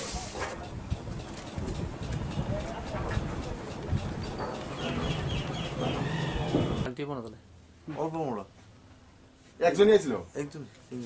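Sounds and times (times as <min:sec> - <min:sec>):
steady background noise: 0:00.0 - 0:11.0
high chirps: 0:03.4 - 0:06.9
birds calling: 0:03.7 - 0:06.9.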